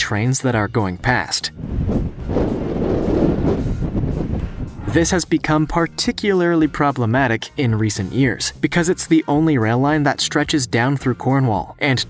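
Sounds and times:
wind buffeting the microphone: 1.5s - 5.8s.

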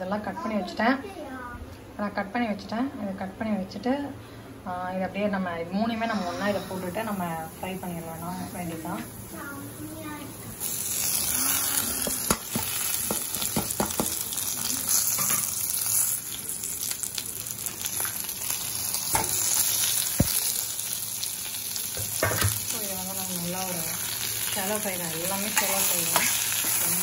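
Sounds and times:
oil sizzling in a pan: 6.5s - 27.0s.

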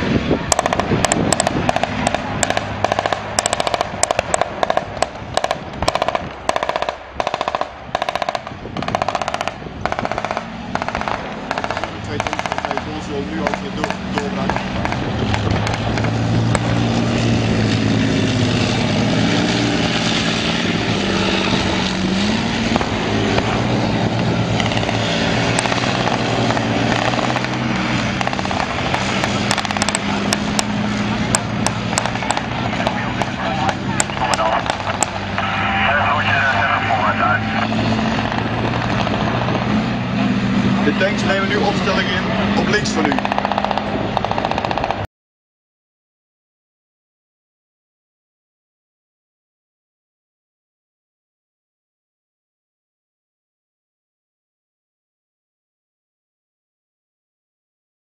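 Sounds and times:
tank diesel engine driving: 0.0s - 45.1s
rapid gunfire: 0.5s - 15.8s, 28.2s - 30.4s, 31.6s - 35.2s, 43.1s - 45.0s.

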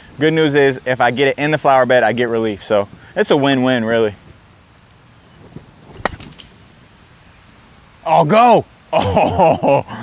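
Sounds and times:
putter striking golf ball: 5.9s - 6.6s.

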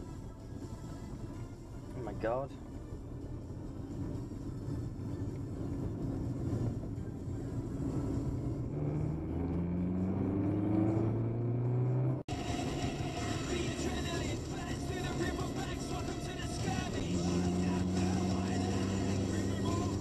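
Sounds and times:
road noise inside car: 0.0s - 20.0s
car engine accelerating: 1.9s - 20.0s.

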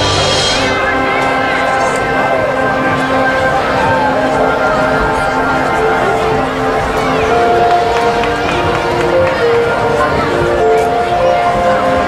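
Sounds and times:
marching band playing held notes: 0.0s - 12.0s
spectators talking: 0.0s - 12.0s.

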